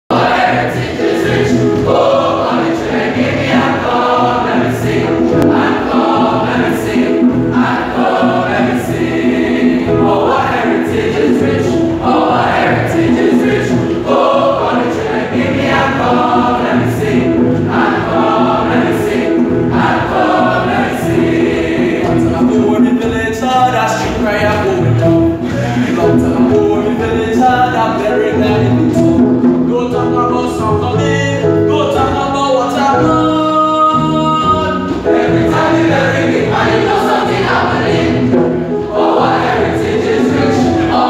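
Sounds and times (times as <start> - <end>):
male choir singing: 0.1 - 29.0, 32.5 - 41.0.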